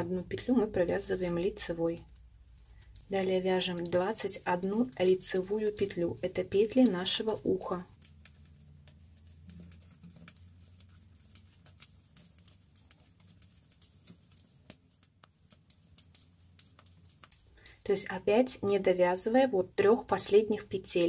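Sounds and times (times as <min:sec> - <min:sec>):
metal knitting needles clicking: 0:02.8 - 0:17.8.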